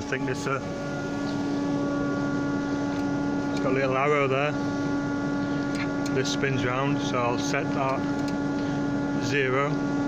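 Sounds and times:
electric motor humming: 0:00.0 - 0:10.0.

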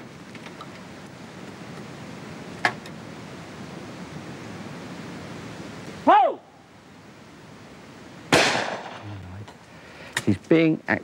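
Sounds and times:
person shouting: 0:06.0 - 0:06.5
shotgun shot echoing: 0:08.3 - 0:09.2.

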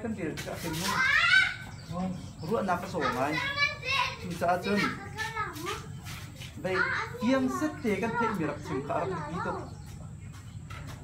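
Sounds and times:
children calling and playing: 0:00.0 - 0:11.0.

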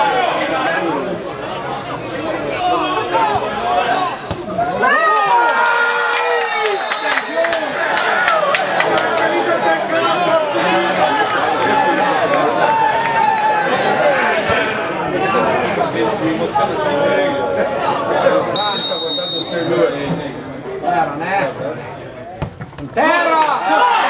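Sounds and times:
crowd shouting and cheering: 0:00.0 - 0:24.0.

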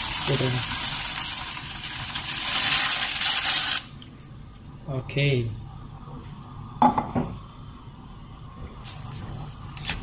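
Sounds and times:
water boiling: 0:00.0 - 0:10.0.

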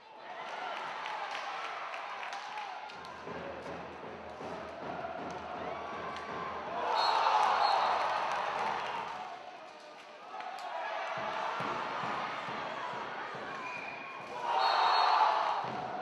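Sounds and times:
arena crowd cheering: 0:00.0 - 0:16.0.

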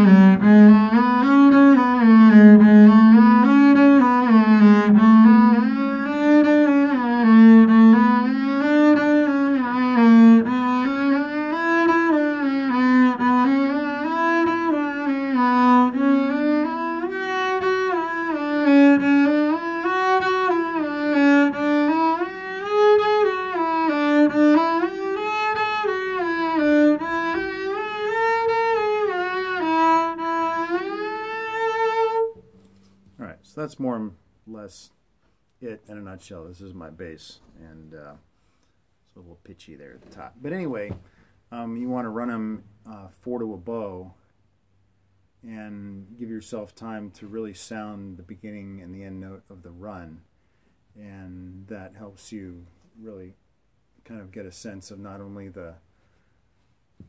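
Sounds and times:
bowed double bass runs: 0:00.0 - 0:33.8.

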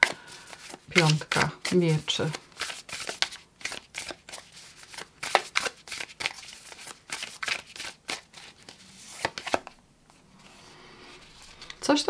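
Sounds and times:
card deck shuffling: 0:00.0 - 0:11.8.

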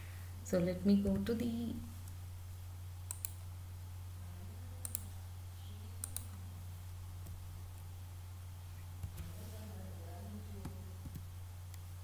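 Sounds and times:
low electrical hum: 0:00.0 - 0:12.0
computer mouse clicking: 0:03.1 - 0:03.5, 0:04.8 - 0:05.1, 0:06.0 - 0:06.4.

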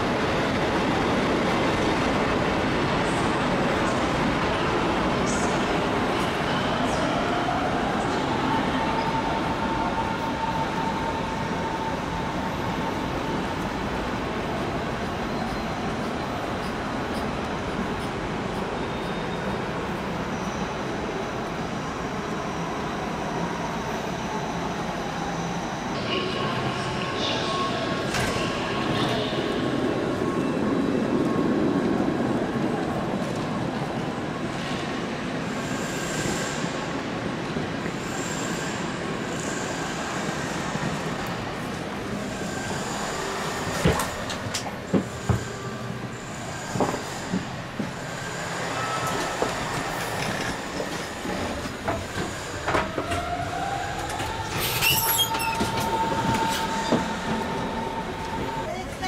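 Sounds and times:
train rumble: 0:26.0 - 0:59.0
high squeals: 0:52.2 - 0:58.7.

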